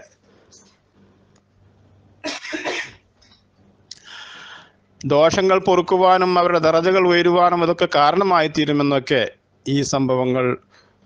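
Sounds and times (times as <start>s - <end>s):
person coughing: 2.2s - 3.0s.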